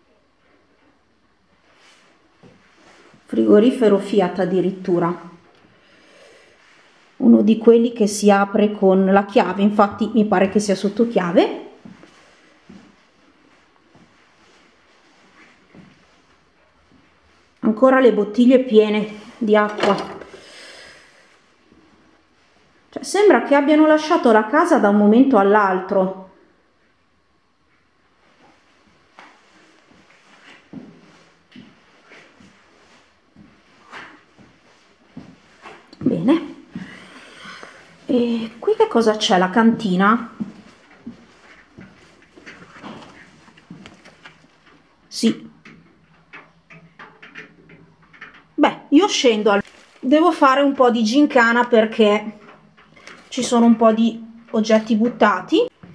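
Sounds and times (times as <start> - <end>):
soft breath out: 5.7 - 7.0, 36.8 - 38.0.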